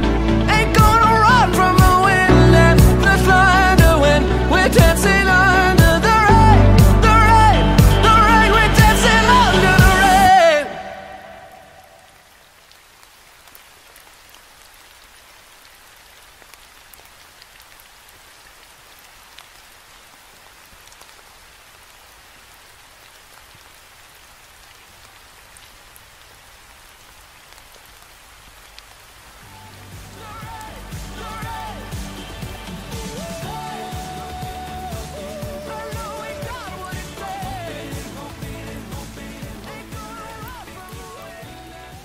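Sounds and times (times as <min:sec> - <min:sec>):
music: 0:00.0 - 0:11.4, 0:29.4 - 0:42.0
steady rain: 0:00.0 - 0:42.0
raindrops ticking: 0:11.6 - 0:42.0.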